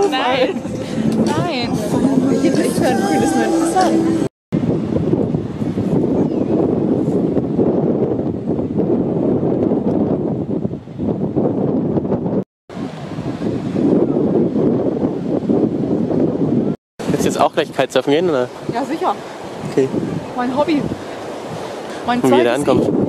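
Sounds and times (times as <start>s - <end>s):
strong wind buffeting microphone: 0.0s - 23.0s.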